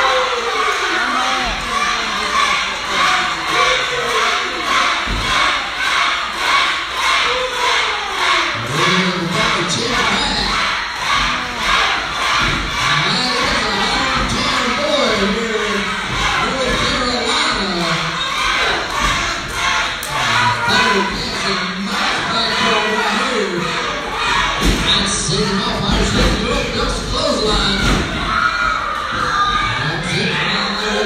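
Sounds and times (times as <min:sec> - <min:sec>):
children's voices: 0:00.0 - 0:31.0
crowd cheering and shouting: 0:00.0 - 0:31.0
rhythmic clapping: 0:01.5 - 0:28.0.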